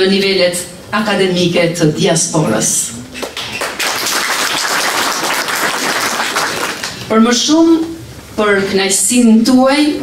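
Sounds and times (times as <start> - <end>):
audience applauding: 3.2 - 7.1.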